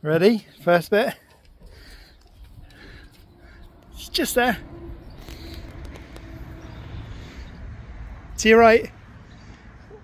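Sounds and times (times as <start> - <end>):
wind buffeting microphone: 1.6 - 8.4.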